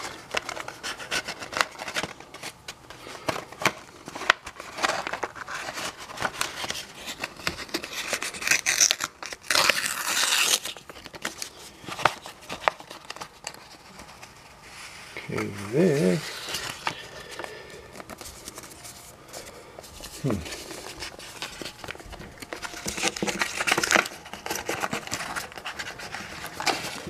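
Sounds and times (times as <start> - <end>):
paper envelope tearing: 0.0 - 13.7, 20.0 - 27.0.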